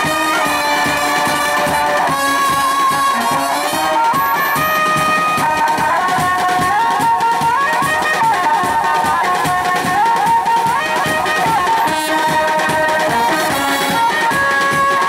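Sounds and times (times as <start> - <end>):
brass horns playing melody: 0.0 - 6.2, 10.9 - 15.0
snare and bass drums beating: 0.0 - 15.0.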